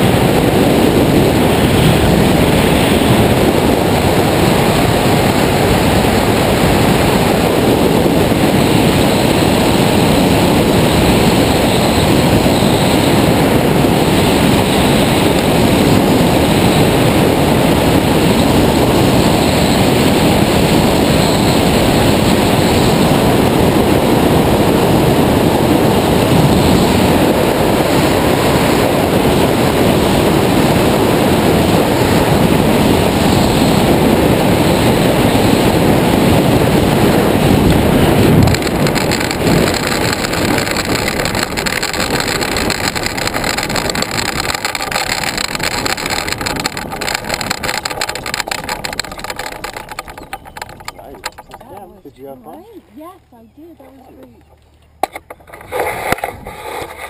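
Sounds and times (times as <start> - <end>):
wheels rattling on grass: 0.0 - 57.0
wind rushing over microphone: 0.0 - 57.0.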